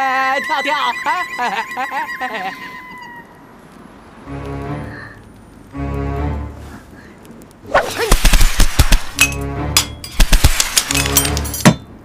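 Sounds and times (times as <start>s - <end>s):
background music: 4.2s - 6.9s, 8.5s - 12.0s.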